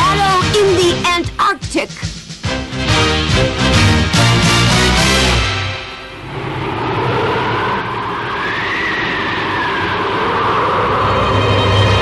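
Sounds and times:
music: 0:00.0 - 0:06.2
blizzard wind rushing: 0:05.6 - 0:12.0.

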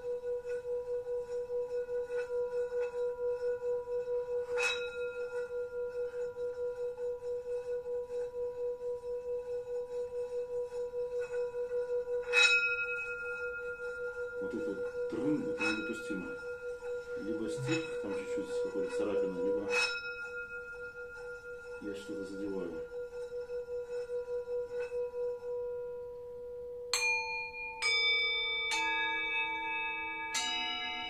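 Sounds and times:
singing bowl ringing: 0:00.0 - 0:26.1, 0:26.9 - 0:31.0.

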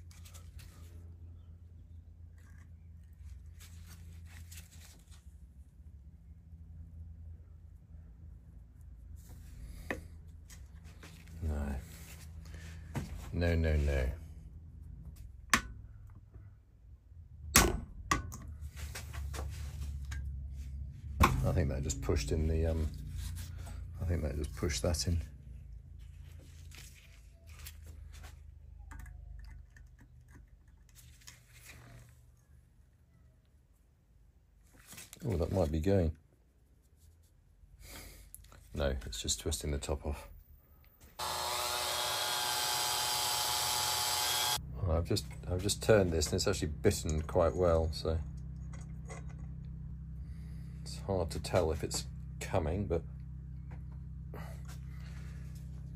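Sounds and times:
low steady hum: 0:00.0 - 0:55.9
cordless drill drilling metal: 0:41.2 - 0:44.6.

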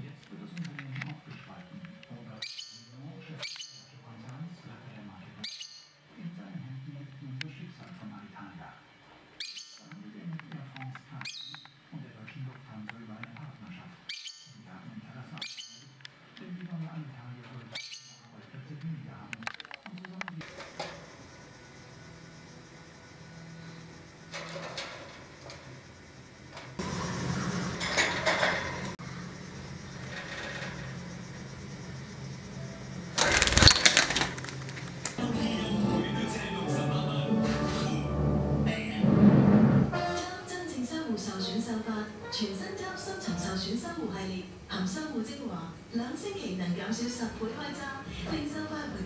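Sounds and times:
soft bird chirps: 0:01.2 - 0:04.1, 0:05.4 - 0:06.1, 0:09.0 - 0:10.1, 0:11.1 - 0:12.4, 0:14.0 - 0:14.7, 0:15.4 - 0:16.0, 0:17.7 - 0:18.4
lovebird calling: 0:01.3 - 0:04.0, 0:09.4 - 0:10.0, 0:14.0 - 0:14.6, 0:15.4 - 0:16.1, 0:17.7 - 0:18.3
steady low hum: 0:20.5 - 0:42.3
wire birdcage rattling: 0:24.2 - 0:26.8, 0:27.8 - 0:35.2.

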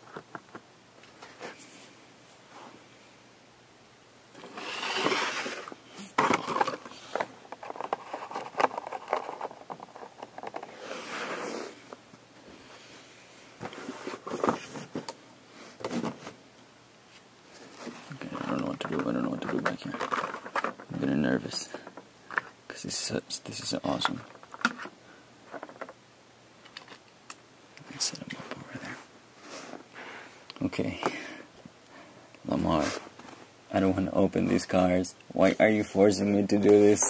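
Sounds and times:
rustling card and plastic: 0:04.4 - 0:11.4, 0:13.6 - 0:15.1, 0:17.5 - 0:22.6, 0:23.9 - 0:26.0, 0:26.6 - 0:27.1.

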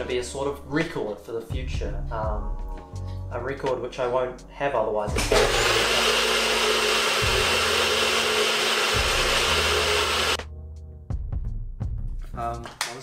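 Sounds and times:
electric blender whirring: 0:05.2 - 0:10.4.

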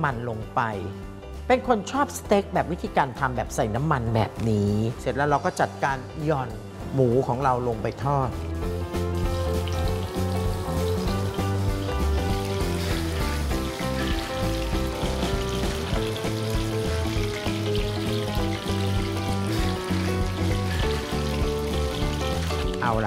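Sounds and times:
background music: 0:00.0 - 0:23.0
meat sizzling in oil: 0:08.3 - 0:23.0.

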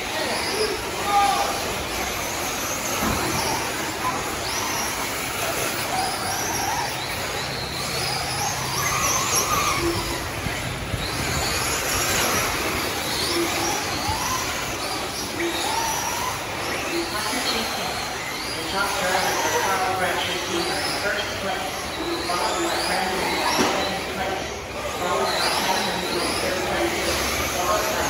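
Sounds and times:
electric motors whining: 0:00.0 - 0:28.0.

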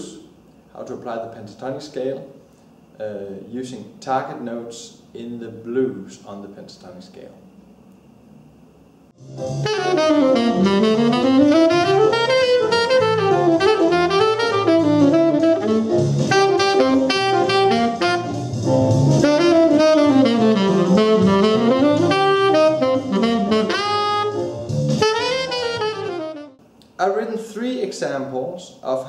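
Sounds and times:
tenor saxophone playing jazz blues: 0:09.2 - 0:26.6.

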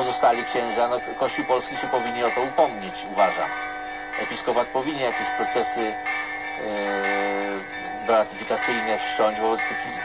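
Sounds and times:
steady ringing tones: 0:00.0 - 0:10.0.

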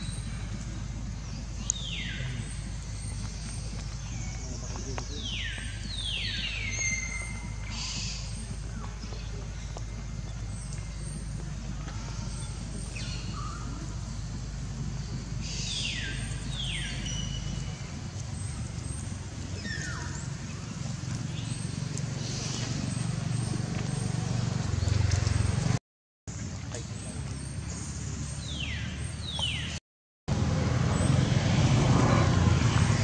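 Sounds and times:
outdoor background hiss: 0:00.0 - 0:24.8.

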